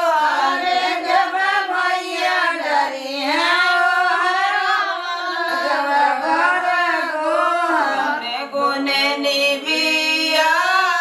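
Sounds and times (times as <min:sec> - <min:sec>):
women singing unaccompanied: 0:00.0 - 0:11.0.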